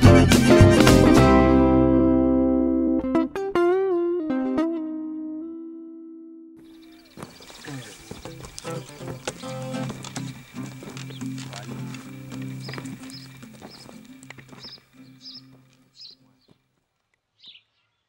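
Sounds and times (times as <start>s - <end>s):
high bird chirps: 6.6s - 16.6s, 17.4s - 18.0s
animal calls: 6.7s - 16.6s
voices: 6.8s - 16.4s.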